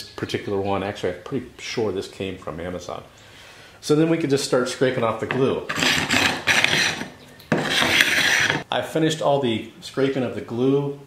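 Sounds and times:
scraper scraping wooden board: 0:05.7 - 0:08.6.

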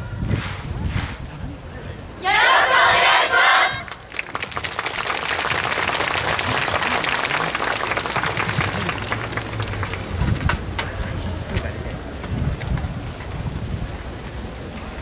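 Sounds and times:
group shouting in unison: 0:02.2 - 0:03.9
audience applause: 0:04.1 - 0:11.0.

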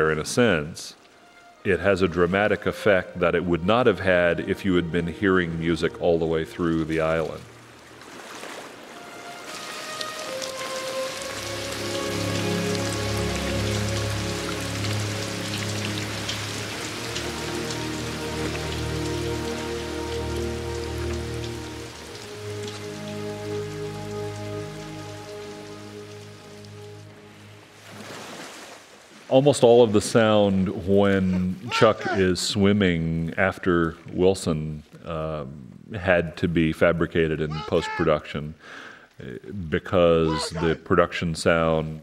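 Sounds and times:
orchestral film score chords: 0:01.5 - 0:07.4, 0:08.9 - 0:27.8.

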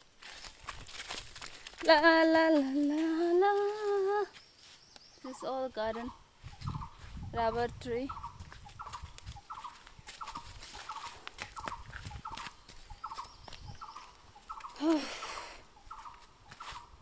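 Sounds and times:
footsteps on dry leaves: 0:00.0 - 0:17.0.

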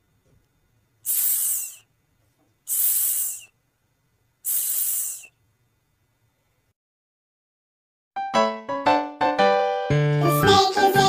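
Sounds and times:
person making hissing s sound: 0:01.0 - 0:01.9, 0:02.7 - 0:03.5, 0:04.4 - 0:05.4.

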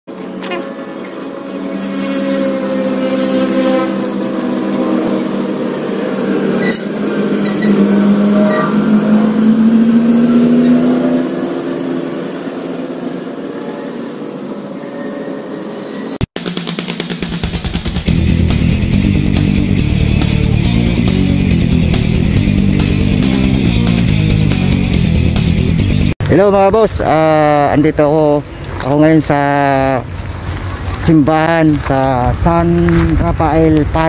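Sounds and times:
engine running: 0:00.1 - 0:14.8, 0:16.7 - 0:26.2.

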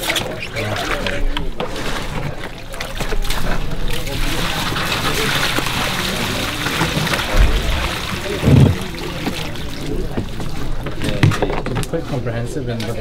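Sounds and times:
water pouring and splashing: 0:00.0 - 0:12.0
dull thumps: 0:07.3 - 0:09.3.

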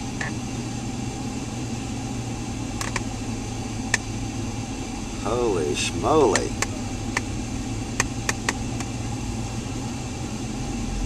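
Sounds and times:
car engine low hum: 0:00.0 - 0:11.0
sharp irregular clicks: 0:02.8 - 0:03.1, 0:03.9 - 0:04.1, 0:06.3 - 0:07.3, 0:08.0 - 0:08.9.

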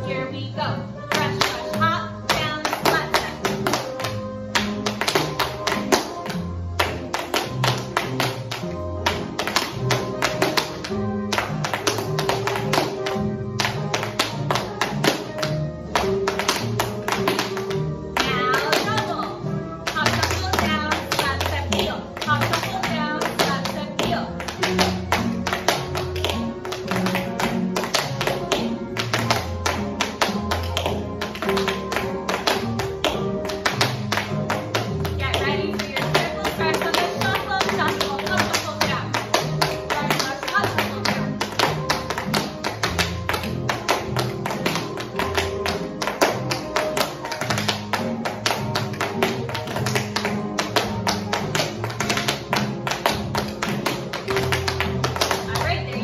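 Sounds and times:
recorded music with steady beat: 0:00.0 - 0:56.0
tap shoes on hard floor: 0:01.1 - 0:56.0.

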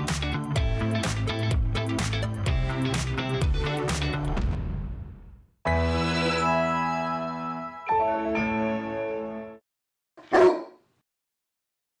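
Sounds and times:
dog yip: 0:10.2 - 0:10.8.

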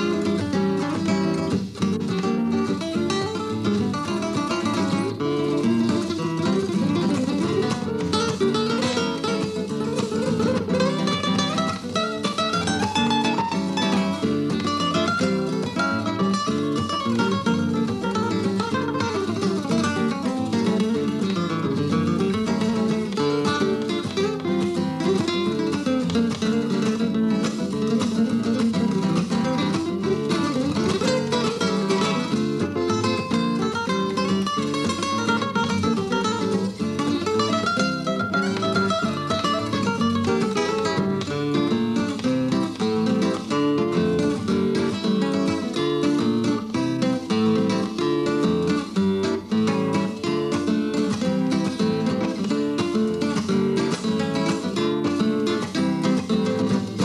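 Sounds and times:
flamenco guitar duet: 0:00.0 - 0:57.0.

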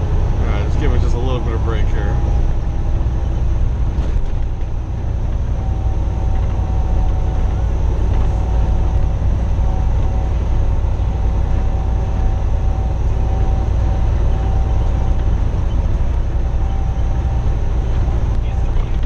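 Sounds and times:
diesel truck engine droning: 0:00.0 - 0:19.0
road and tyre noise: 0:00.0 - 0:19.0.

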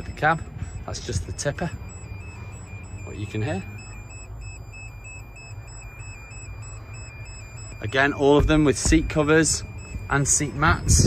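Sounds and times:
hydraulic unit humming: 0:00.0 - 0:11.0.

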